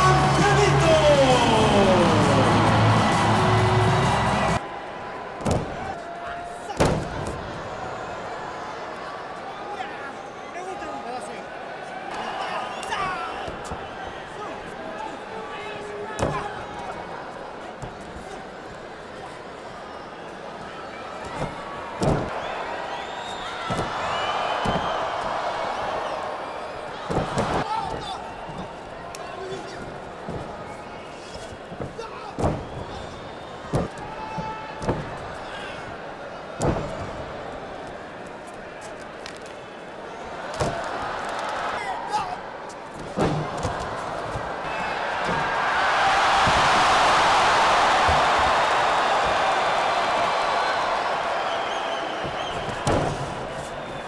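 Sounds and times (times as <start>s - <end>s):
arena crowd shouting: 0.0s - 18.4s, 19.8s - 54.0s
bodies slamming onto ring canvas: 31.5s - 34.1s.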